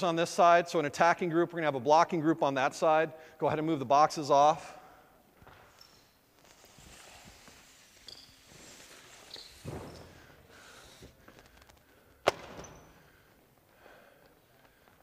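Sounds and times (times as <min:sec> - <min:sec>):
shoe squeaks on court: 0:05.6 - 0:10.3, 0:12.4 - 0:13.0.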